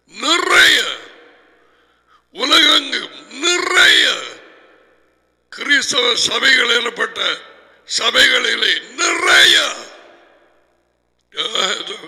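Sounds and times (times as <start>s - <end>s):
man speaking: 0.0s - 1.4s, 2.3s - 4.5s, 5.5s - 10.1s, 11.3s - 12.0s.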